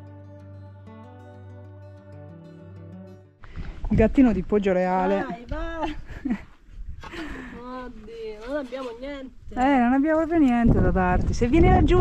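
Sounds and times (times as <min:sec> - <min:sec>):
woman talking: 0:03.9 - 0:06.0, 0:07.4 - 0:12.0.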